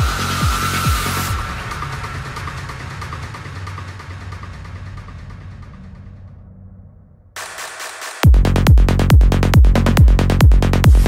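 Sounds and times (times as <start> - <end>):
noisy synth sweep: 0.0 - 4.1
low rumble: 0.0 - 7.4.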